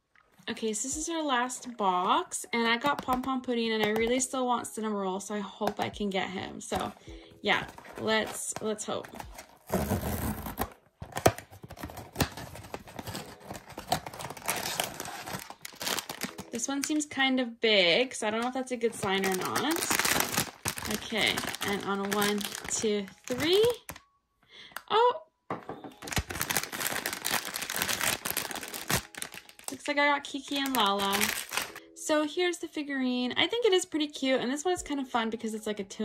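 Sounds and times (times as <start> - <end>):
packaging tearing and crinkling: 7.7 - 16.6, 18.9 - 24.0, 26.0 - 29.9, 30.5 - 31.8.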